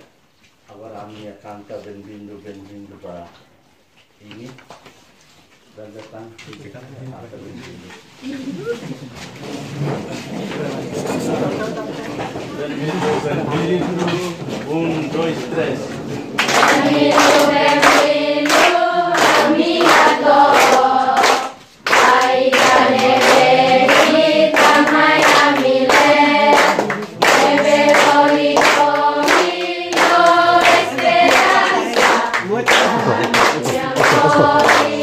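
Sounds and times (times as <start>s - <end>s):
children and adults singing: 9.6s - 35.0s
rhythmic hand clapping: 15.6s - 35.0s.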